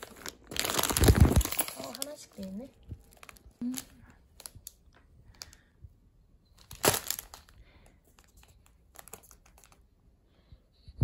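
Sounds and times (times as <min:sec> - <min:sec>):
plastic packaging crinkling: 0:00.0 - 0:05.6, 0:06.6 - 0:09.8.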